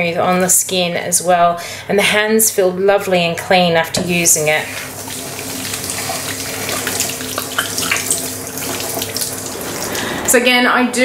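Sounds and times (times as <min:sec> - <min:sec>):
tap water rushing into sink: 0:04.0 - 0:10.3.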